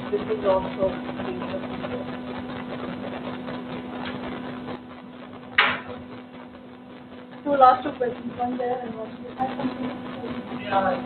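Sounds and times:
room noise hiss: 0.0s - 11.0s
steady low hum: 0.0s - 11.0s.

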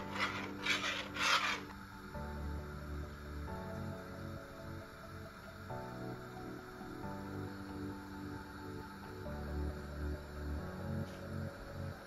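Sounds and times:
metal spoon scraping a pot: 0.0s - 1.7s.

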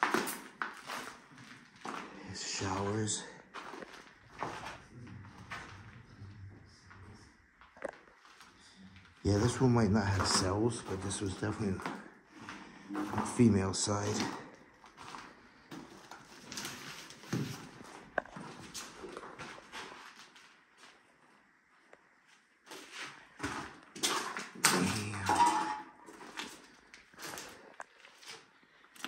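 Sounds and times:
footsteps crunching over rubble: 0.0s - 21.4s, 22.2s - 29.0s.

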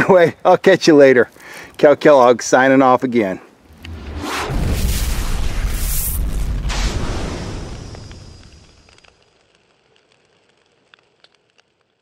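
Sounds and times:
fire crackles: 0.0s - 12.0s
explosion low rumble: 3.6s - 9.0s.

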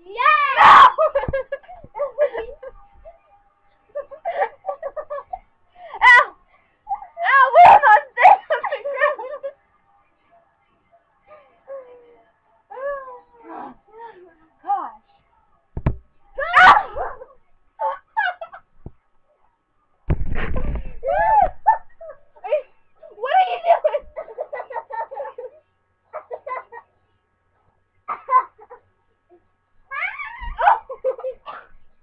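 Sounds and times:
soft knock: 15.8s - 16.1s
high-pitched squealing and giggling: 20.9s - 26.9s, 29.9s - 31.8s
girl squealing: 29.9s - 30.9s.

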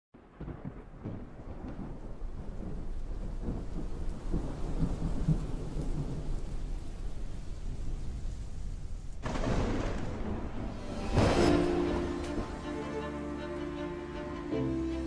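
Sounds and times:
faint rain-like hiss: 0.2s - 15.0s
low thunder-like rumble: 0.3s - 12.7s.

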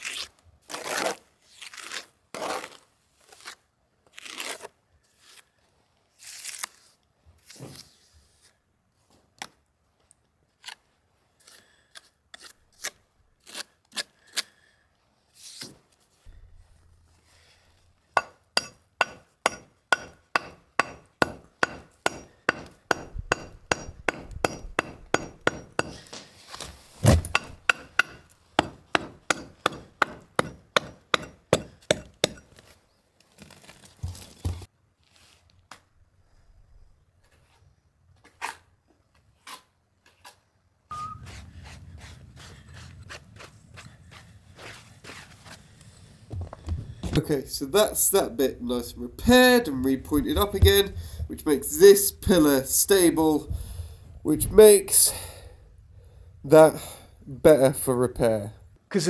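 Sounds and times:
hammer striking metal: 18.2s - 26.0s, 27.1s - 32.5s.

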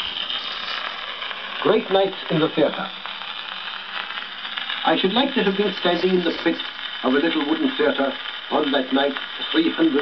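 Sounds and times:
record surface hiss and crackles: 0.0s - 10.0s
recorded voice: 1.6s - 2.9s, 4.8s - 10.0s.

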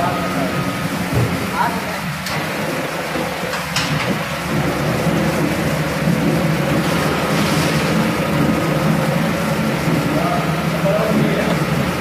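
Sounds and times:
motor hum: 0.0s - 12.0s
rushing churning machinery: 0.0s - 12.0s.

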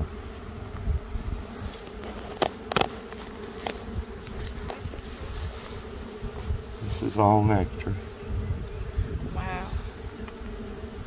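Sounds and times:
honeybees buzzing: 0.0s - 11.0s.

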